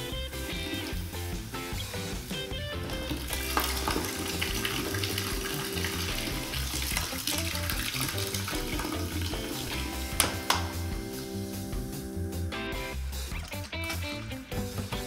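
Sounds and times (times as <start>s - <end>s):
background music: 0.0s - 15.0s
drink pouring into liquid: 0.3s - 10.9s, 13.0s - 14.7s.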